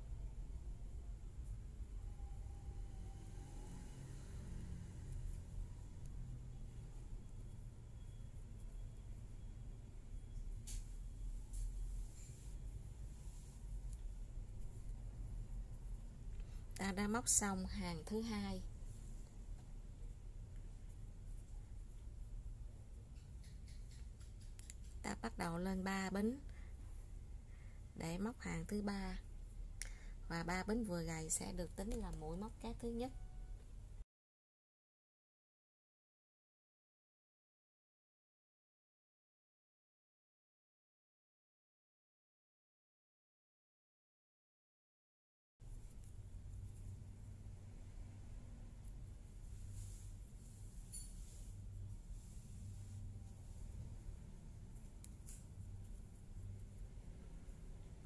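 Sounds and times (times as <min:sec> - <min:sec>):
low steady hum: 0:00.0 - 0:34.0, 0:45.6 - 0:58.0
faint rustles of crochet work: 0:00.7 - 0:33.4, 0:45.6 - 0:58.0
crochet hook ticking and rustling: 0:23.0 - 0:25.0, 0:31.8 - 0:32.5.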